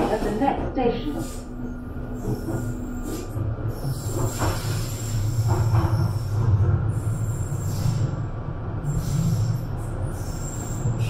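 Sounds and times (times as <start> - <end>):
train wheels rumbling: 0.0 - 11.0
wheels squealing on rails: 0.0 - 11.0.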